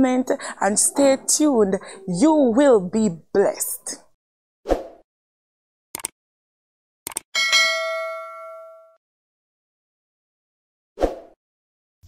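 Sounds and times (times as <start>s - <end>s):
quick double click: 6.0s - 6.2s
bell ding: 7.4s - 9.0s.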